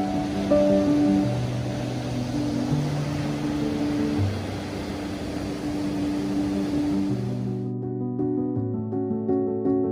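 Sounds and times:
surf washing: 0.0 - 7.6
slow held music notes: 0.0 - 7.8.

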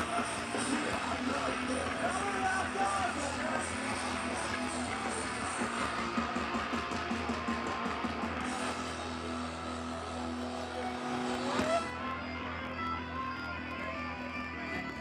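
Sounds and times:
crowd noise: 0.0 - 15.0
distorted punk guitars: 0.0 - 15.0.

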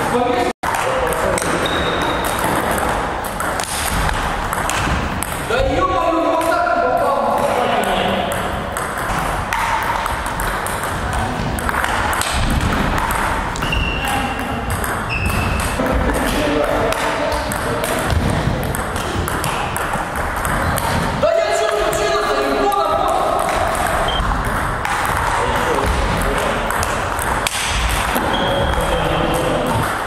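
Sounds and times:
table tennis balls clicking: 0.6 - 5.5, 6.4 - 30.0.

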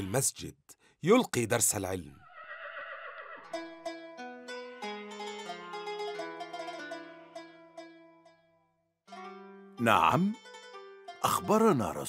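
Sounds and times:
horse whinnying: 2.2 - 3.5
plucked-string music: 3.5 - 12.0.

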